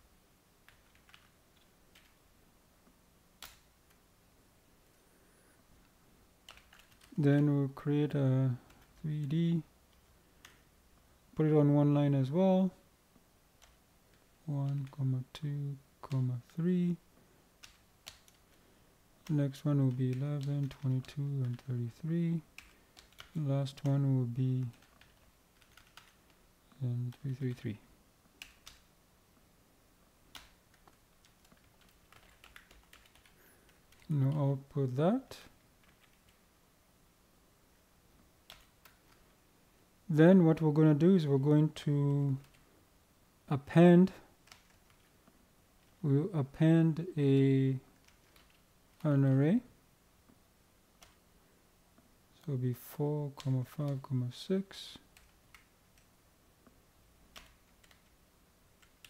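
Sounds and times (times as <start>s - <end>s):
faint keyboard typing: 0.6s - 2.2s, 2.8s - 4.0s, 4.8s - 11.1s, 13.5s - 29.0s, 30.2s - 36.5s, 38.1s - 39.4s, 40.9s - 42.8s, 43.6s - 47.2s, 47.8s - 52.1s, 53.3s - 59.0s.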